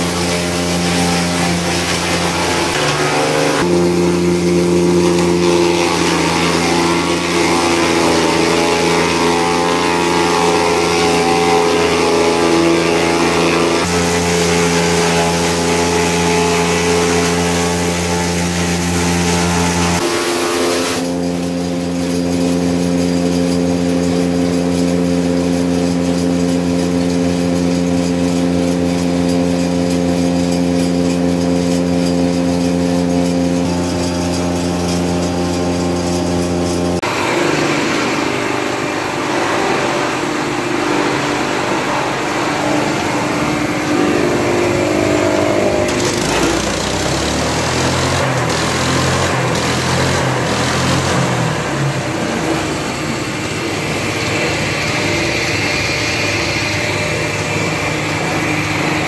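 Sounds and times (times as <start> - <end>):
bagging machine running: 0.0 - 59.0
forage chopper running: 0.0 - 59.0.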